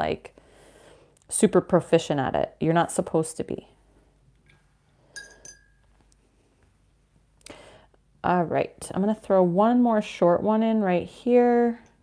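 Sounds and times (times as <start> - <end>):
paintbrush clinking on glass jar: 4.5 - 5.9.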